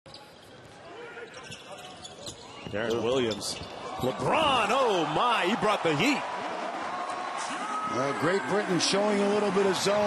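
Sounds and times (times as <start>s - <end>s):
crowd noise: 0.1s - 10.0s.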